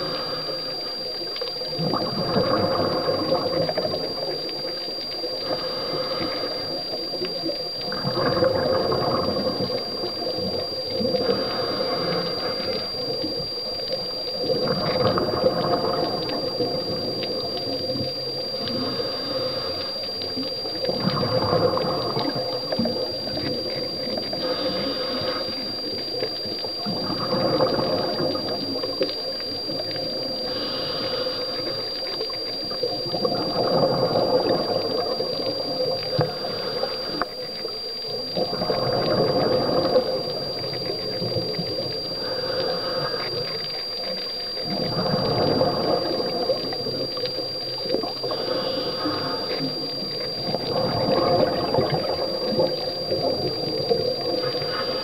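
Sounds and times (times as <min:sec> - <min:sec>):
diver breathing through regulator: 0:00.0 - 0:01.1, 0:05.4 - 0:07.0, 0:11.0 - 0:13.1, 0:18.6 - 0:20.2, 0:24.1 - 0:25.7, 0:30.3 - 0:32.2, 0:36.1 - 0:37.4, 0:42.0 - 0:46.7, 0:48.1 - 0:50.2, 0:54.3 - 0:55.0
exhaled bubbles underwater: 0:00.0 - 0:55.0.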